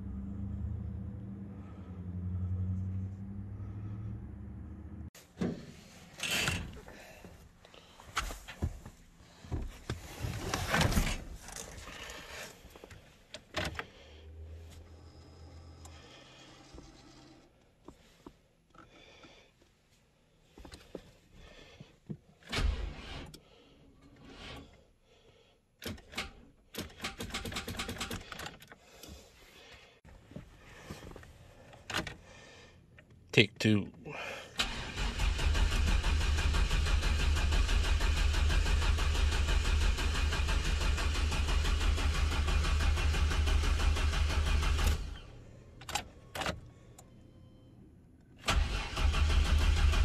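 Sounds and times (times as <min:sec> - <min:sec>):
clicks and knocks of controls: 0:25.8 - 0:29.2, 0:31.7 - 0:32.2, 0:45.8 - 0:47.1.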